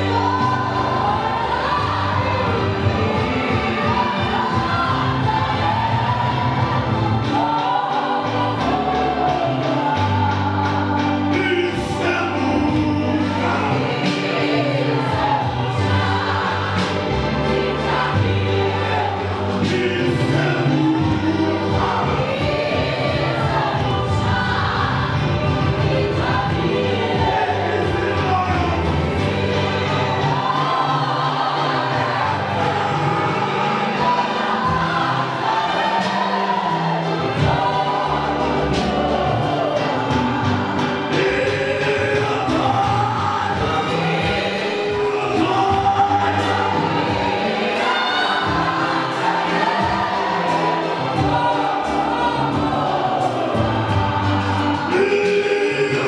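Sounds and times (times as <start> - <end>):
congregation singing gospel song: 0.0 - 56.0.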